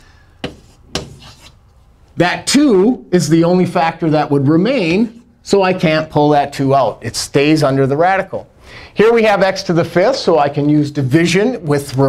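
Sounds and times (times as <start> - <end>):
chalk strokes on chalkboard: 0.4 - 1.6.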